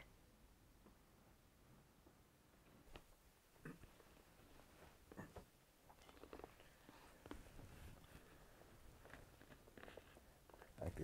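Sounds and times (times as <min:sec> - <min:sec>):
soft rustles of bedding: 0:02.1 - 0:11.0.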